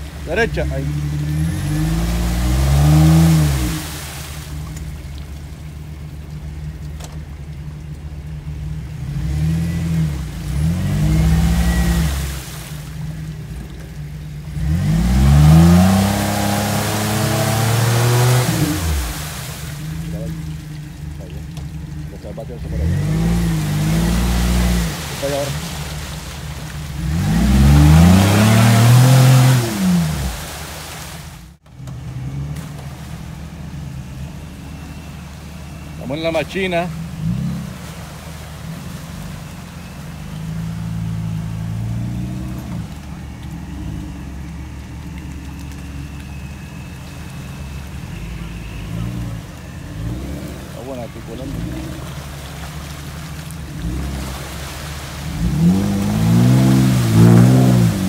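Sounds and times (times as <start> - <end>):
engine revving hard: 0.0 - 4.5, 9.0 - 12.8, 14.5 - 20.3, 22.6 - 26.2, 26.9 - 30.8, 53.6 - 58.0
spraying mud and water hiss: 0.0 - 58.0.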